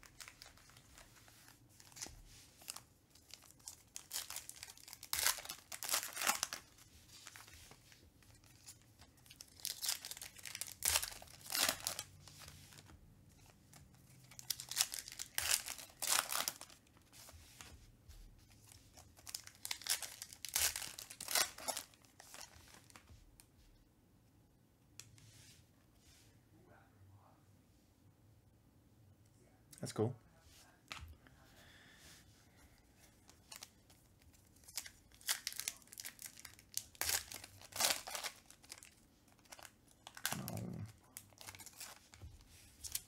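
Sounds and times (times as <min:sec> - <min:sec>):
foil wrappers tearing and crinkling: 0:01.8 - 0:07.5, 0:08.2 - 0:12.2, 0:14.2 - 0:16.8, 0:19.2 - 0:23.0, 0:34.5 - 0:42.2.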